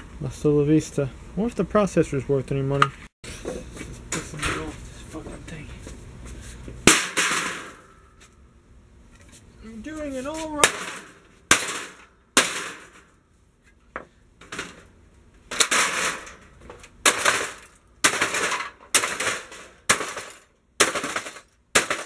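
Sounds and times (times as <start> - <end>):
sledgehammer smashing metal case: 6.9 - 8.0, 10.6 - 13.1, 15.5 - 22.0.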